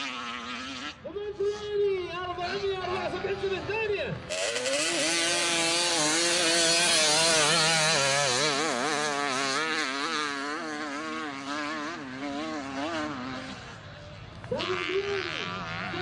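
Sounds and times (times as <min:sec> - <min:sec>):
motorcycle engine revving: 0:00.0 - 0:01.0, 0:04.2 - 0:16.0
wheel spinning in sand: 0:04.3 - 0:13.4.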